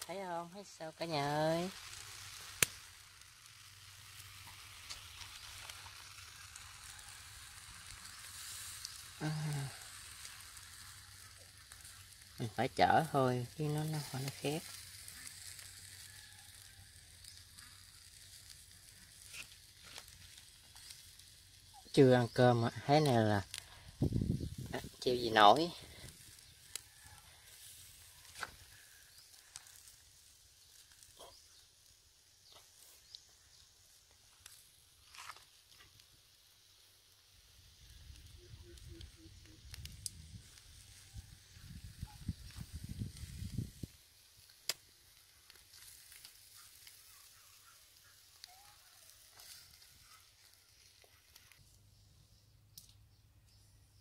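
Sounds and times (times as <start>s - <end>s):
food sizzling on grill: 0.0s - 51.7s.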